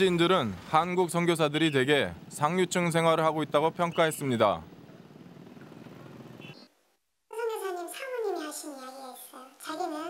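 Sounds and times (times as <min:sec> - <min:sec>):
woman speaking in high disguised voice: 0:07.3 - 0:10.0.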